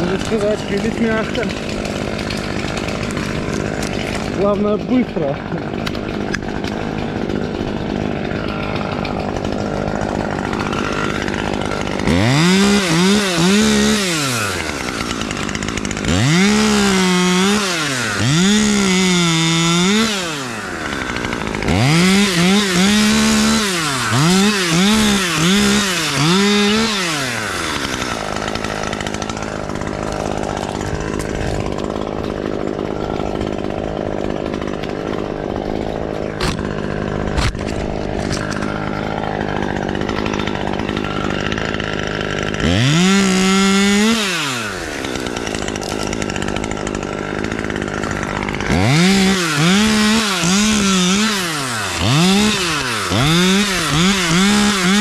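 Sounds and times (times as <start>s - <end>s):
chainsaw revving and idling: 0.0s - 55.0s.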